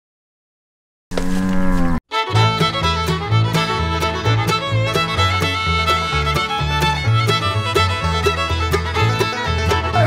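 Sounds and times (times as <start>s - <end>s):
cow mooing: 1.2s - 2.0s.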